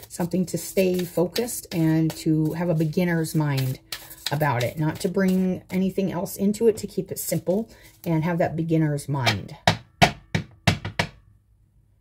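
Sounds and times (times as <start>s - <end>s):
cards being shuffled: 0.0s - 5.7s.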